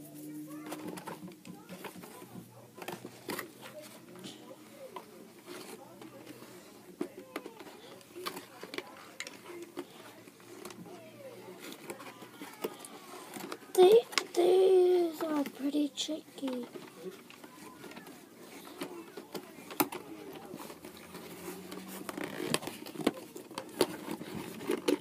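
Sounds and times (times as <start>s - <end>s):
faint voice: 0.0s - 25.0s
packaging clicks and rustles: 0.2s - 25.0s.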